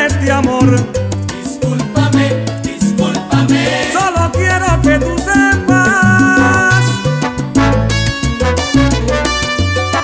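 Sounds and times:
person singing: 0.0s - 7.0s
bass line: 0.0s - 10.0s
salsa band playing: 0.0s - 10.0s.

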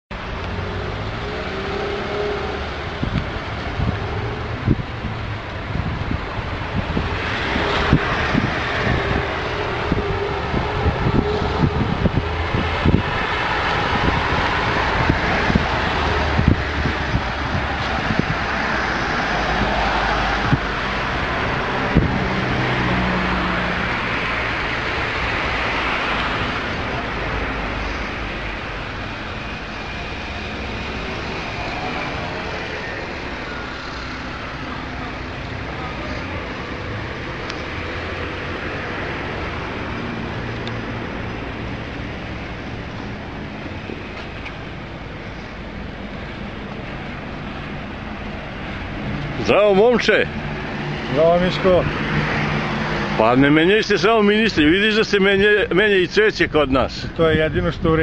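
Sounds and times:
wind on microphone: 0.1s - 53.2s, 56.6s - 58.0s
road traffic: 0.1s - 58.0s.

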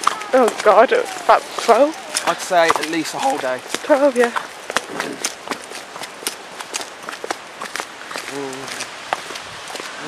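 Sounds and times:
background rush: 0.0s - 10.0s
footsteps on gravel: 0.0s - 10.0s.

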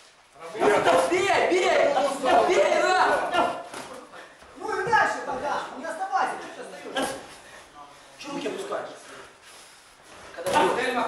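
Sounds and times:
men talking: 0.4s - 9.4s, 10.3s - 11.0s.

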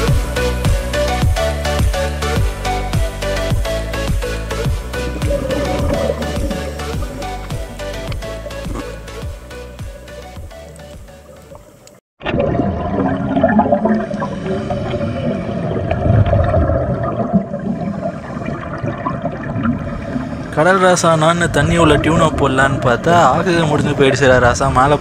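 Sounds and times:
background music: 0.0s - 12.0s
underwater regulator bubbles: 3.5s - 24.8s.

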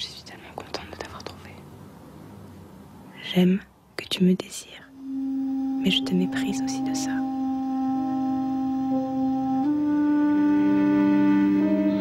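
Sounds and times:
person whispering: 0.0s - 1.6s, 3.2s - 5.0s, 5.8s - 7.3s.

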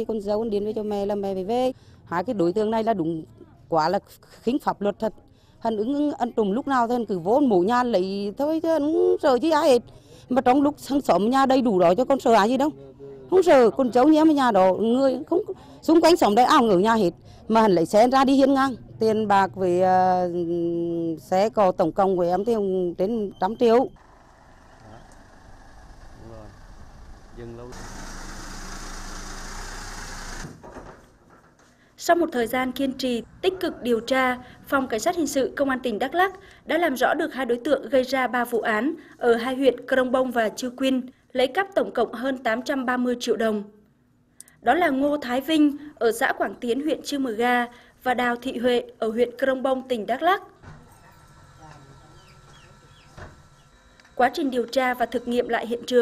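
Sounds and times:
vehicle engine idling: 24.0s - 29.6s.

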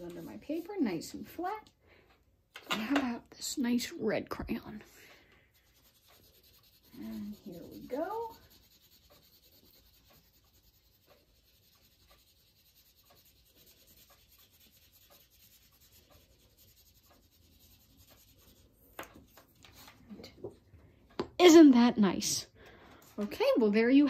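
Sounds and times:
crayon scratching on cardstock: 5.5s - 20.0s.

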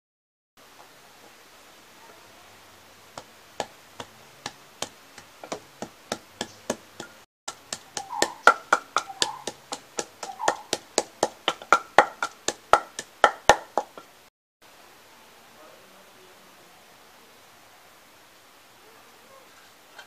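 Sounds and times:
wooden pestle pounding in mortar: 3.2s - 14.1s.

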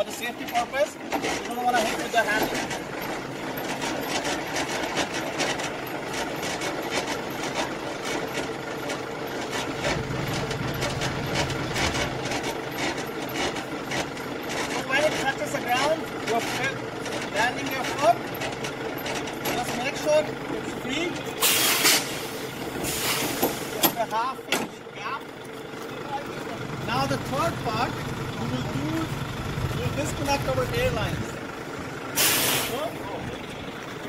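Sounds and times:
crank handle clicking and grinding: 0.0s - 21.4s.

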